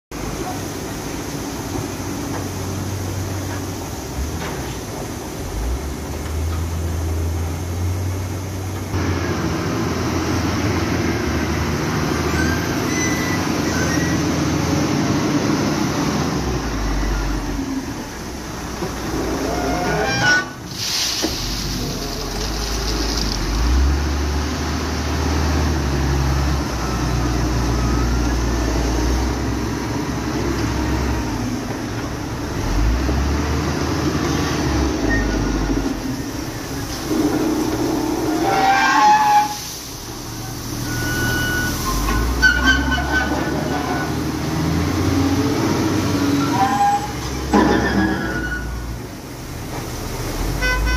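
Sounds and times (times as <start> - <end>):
diesel loader engine under load: 0.1 - 50.9.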